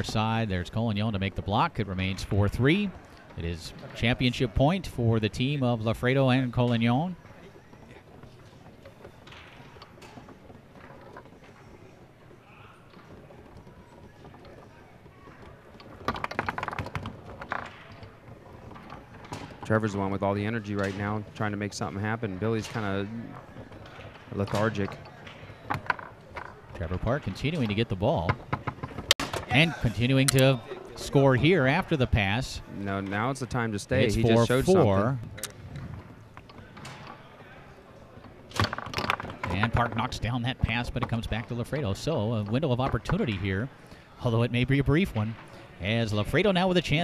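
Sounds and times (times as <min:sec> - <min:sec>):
foosball clicks and clacks: 0:00.0 - 0:33.6, 0:38.2 - 0:47.0.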